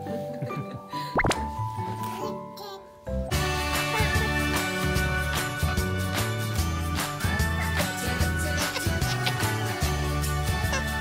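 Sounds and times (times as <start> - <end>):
light children's music: 0.0 - 11.0
rising pop sound effect: 1.2 - 1.5.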